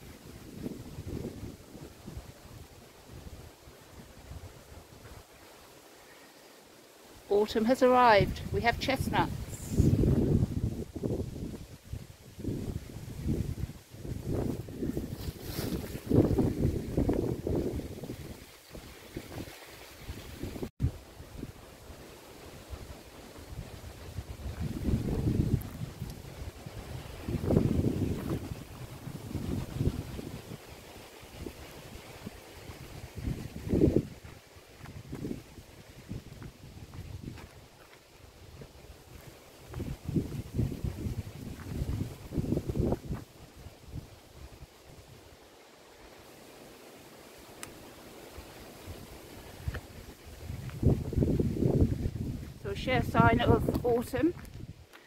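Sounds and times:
wind buffeting microphone: 0.0 - 5.1, 8.2 - 21.6, 22.6 - 45.2, 48.9 - 54.9.

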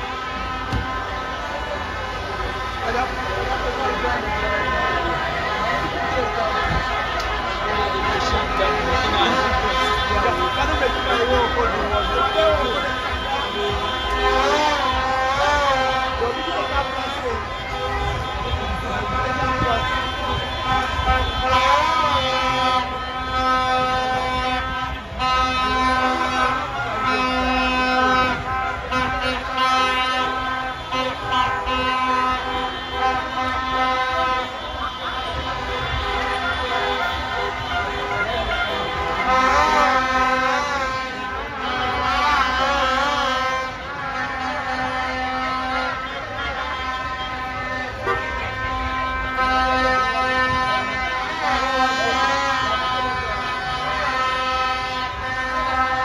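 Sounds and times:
horns blasting together: 0.0 - 56.0
low rumble of street traffic: 0.0 - 56.0.

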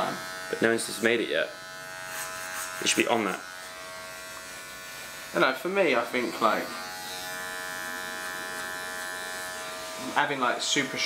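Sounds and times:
electric hair clippers buzzing: 0.0 - 11.0.

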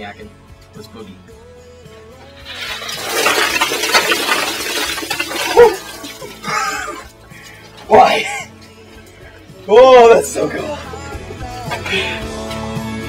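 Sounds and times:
ice water splashing: 2.3 - 8.5
laughter: 6.1 - 7.1
man shouting: 7.9 - 8.5.

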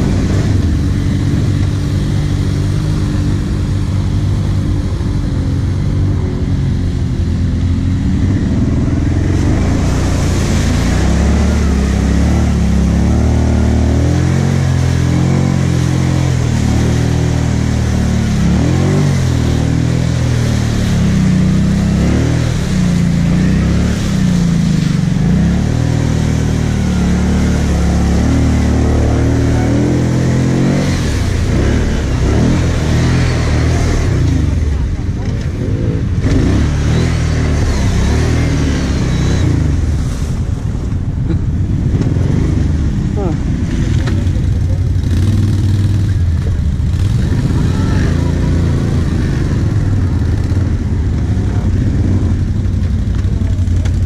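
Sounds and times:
atv engine revving: 0.0 - 54.0
water and mud splashing: 0.0 - 54.0.

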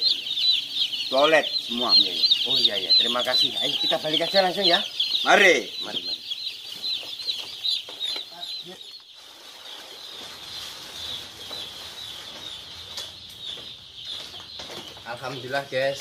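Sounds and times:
chicks peeping: 0.0 - 16.0.

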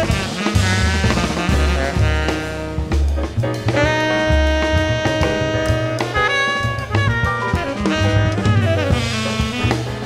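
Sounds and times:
drum kit: 0.0 - 10.0
low bass notes: 0.0 - 10.0
saxophone holding notes: 0.0 - 10.0.

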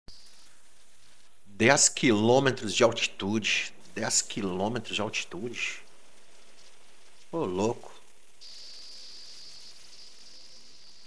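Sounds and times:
faint background hiss: 0.1 - 11.0
thin high-pitched hiss: 0.1 - 11.0.

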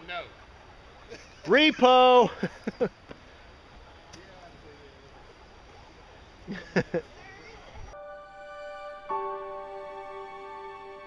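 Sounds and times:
faint distant voices: 0.0 - 8.1.

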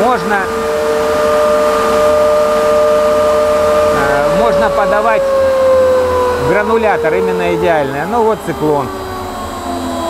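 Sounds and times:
rotary cutter humming loudly: 0.0 - 10.0.

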